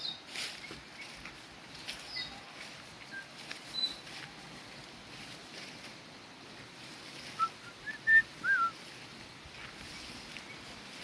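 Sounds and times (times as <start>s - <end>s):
bird whistling call: 7.4s - 8.8s.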